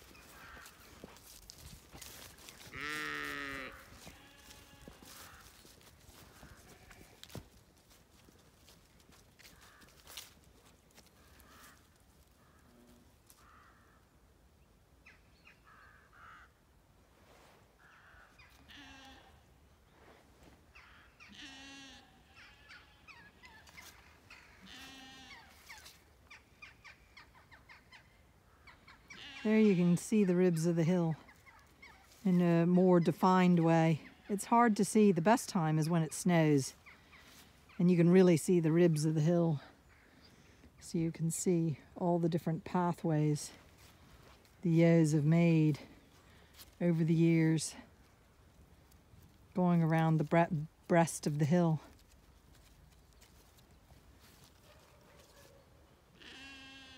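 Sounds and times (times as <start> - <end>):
sheep bleating: 2.6 - 7.4, 18.6 - 19.4, 20.9 - 23.5, 24.6 - 25.6, 29.2 - 30.0, 56.2 - 56.9.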